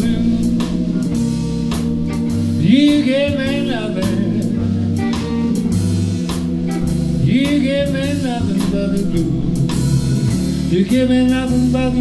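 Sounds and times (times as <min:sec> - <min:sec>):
blues band playing: 0:00.0 - 0:12.0
cymbal and snare strokes: 0:05.1 - 0:07.1.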